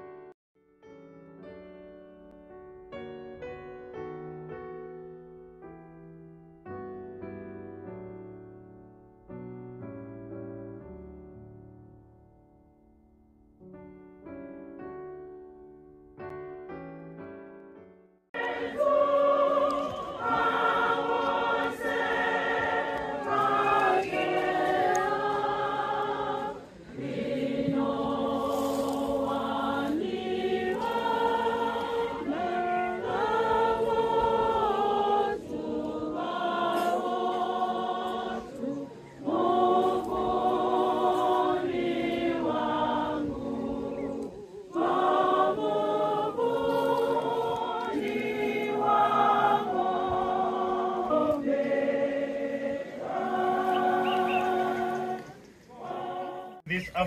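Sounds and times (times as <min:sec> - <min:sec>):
crowd singing a slow hymn: 0:18.4 - 0:56.7.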